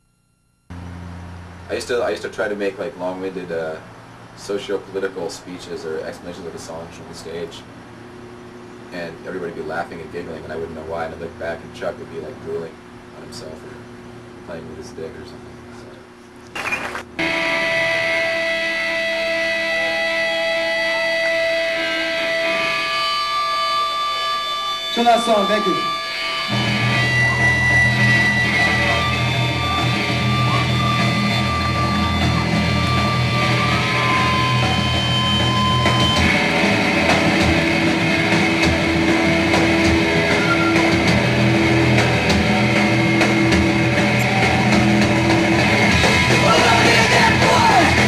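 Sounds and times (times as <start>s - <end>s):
guitar feedback tones: 16.7s - 48.0s
distorted electric guitar chords: 17.1s - 48.0s
person yelling or singing: 46.4s - 48.0s.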